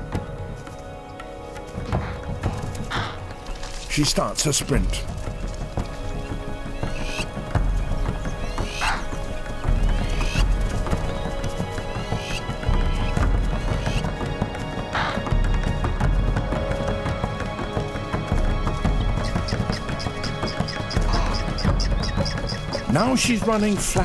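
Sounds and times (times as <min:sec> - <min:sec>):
hoofbeats of running animals: 0:00.0 - 0:04.0, 0:04.7 - 0:24.0
background music: 0:00.0 - 0:24.0.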